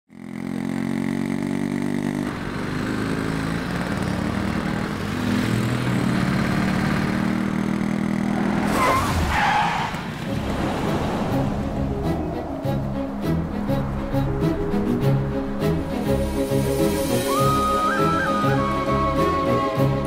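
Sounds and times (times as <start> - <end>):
motorcycle engine: 0.1 - 20.0
truck engine: 0.1 - 20.0
tyre screech: 8.5 - 10.2.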